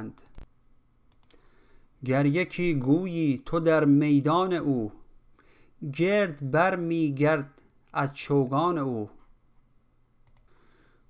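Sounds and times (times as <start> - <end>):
computer mouse clicks: 0.2 - 0.5, 1.1 - 1.4, 10.2 - 10.6.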